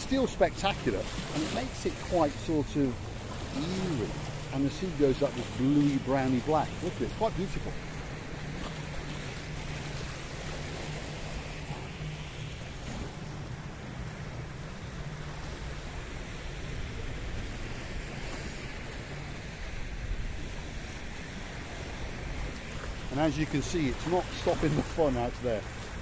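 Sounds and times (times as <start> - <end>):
waves washing against rocks: 0.0 - 13.4, 22.6 - 26.0.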